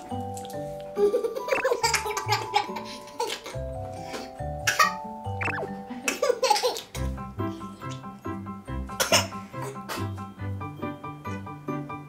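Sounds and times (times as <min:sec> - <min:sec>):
background music with light beat: 0:00.0 - 0:12.0
toddler coughing: 0:04.6 - 0:05.0, 0:06.1 - 0:06.9, 0:09.0 - 0:10.1.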